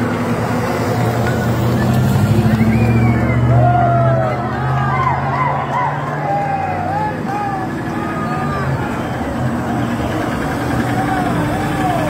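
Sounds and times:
vehicle engine driving past: 0.0 - 12.0
onlookers calling out: 1.3 - 12.0.

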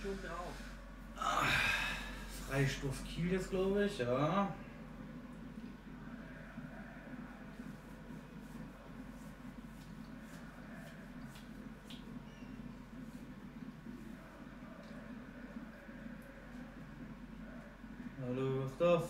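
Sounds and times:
faint low room hum: 0.0 - 19.0.

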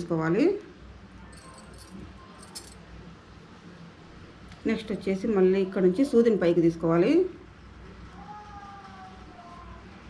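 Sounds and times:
small metal rings jingling: 1.3 - 2.8
woman's voice: 4.6 - 7.4.

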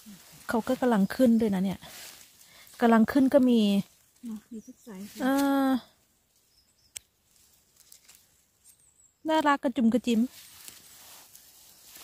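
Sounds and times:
faint rustling: 10.1 - 12.0.

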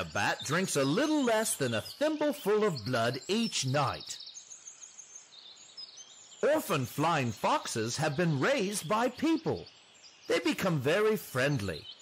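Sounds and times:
soft hiss: 4.2 - 6.5.

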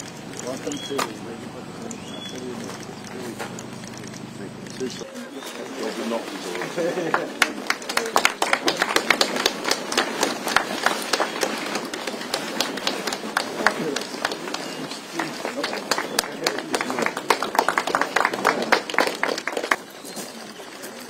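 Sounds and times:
crowd chatter: 0.0 - 21.0
small group clapping: 6.4 - 21.0.

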